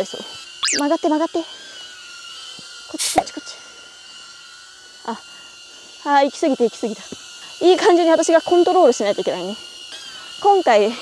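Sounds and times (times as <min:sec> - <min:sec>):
drone propellers whining: 0:00.6 - 0:01.0.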